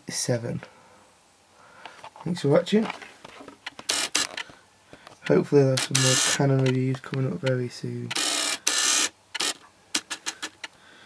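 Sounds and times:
camera handling rubbing: 2.8s - 10.7s.

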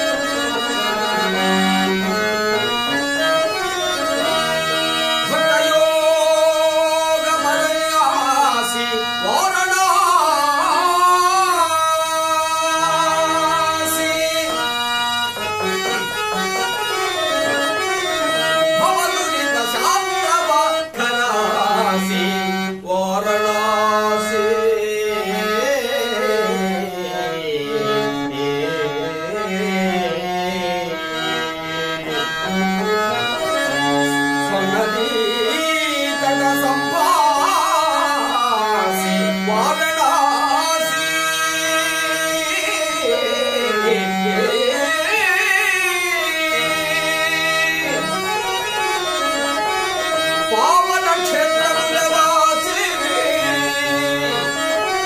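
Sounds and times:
harmonium: 0.0s - 55.0s
man singing devotional verse: 0.0s - 55.0s.

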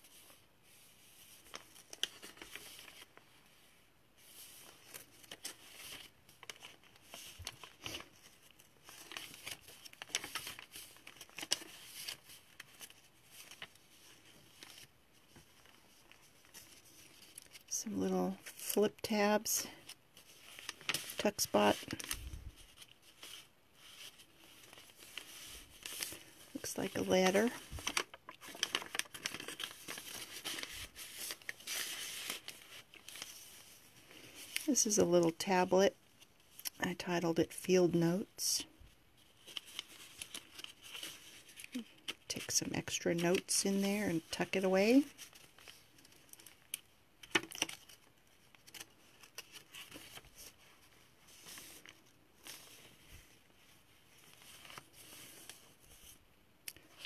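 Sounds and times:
paper pages rustling: 0.0s - 17.7s, 18.4s - 34.7s, 39.2s - 56.2s.

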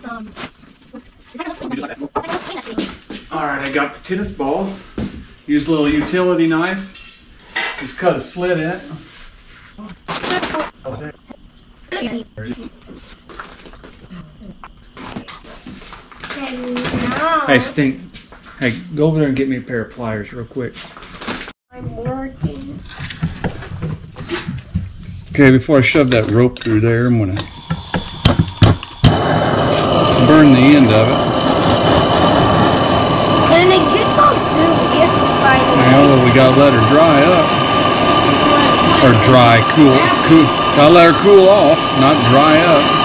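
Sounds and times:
gas torch hissing: 25.3s - 43.0s
indistinct voices: 27.1s - 43.0s.

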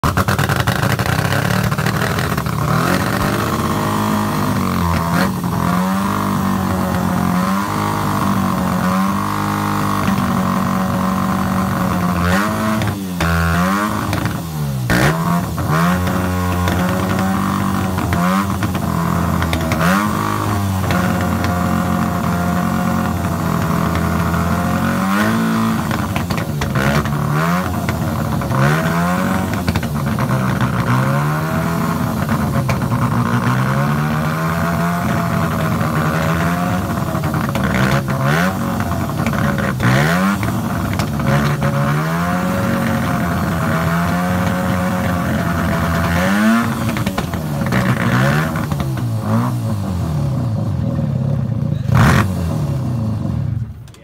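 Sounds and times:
motorcycle engine idling and revving: 0.0s - 54.0s.

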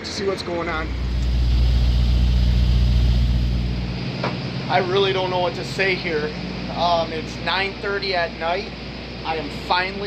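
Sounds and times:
diesel engine idling: 0.4s - 10.0s.

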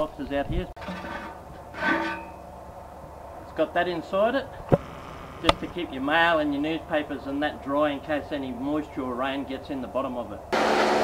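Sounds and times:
metal rack scraping and squealing: 0.8s - 2.5s.

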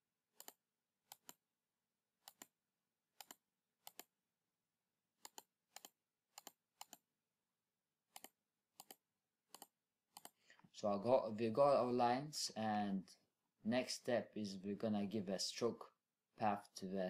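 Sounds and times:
man's voice: 10.8s - 13.1s, 13.7s - 17.0s.

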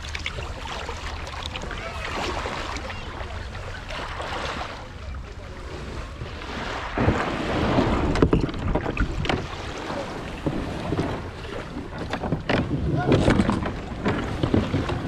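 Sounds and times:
legs splashing into water: 0.0s - 5.0s
water splashing around kayak: 0.0s - 15.0s
wind on microphone: 5.6s - 15.0s.

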